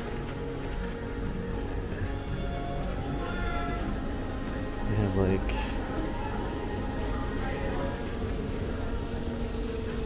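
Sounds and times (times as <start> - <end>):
background music: 0.0 - 10.0
shopping arcade hubbub: 0.0 - 10.0.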